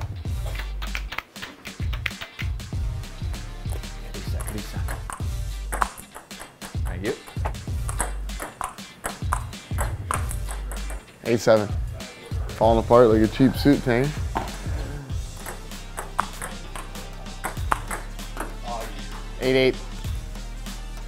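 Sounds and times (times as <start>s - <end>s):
background music with bass line: 0.0s - 21.0s
ping-pong ball clicking: 4.4s - 11.0s, 15.4s - 18.5s.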